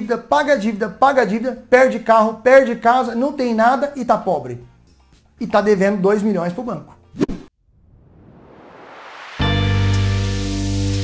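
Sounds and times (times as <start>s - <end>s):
rising whoosh sweep: 7.2s - 10.0s.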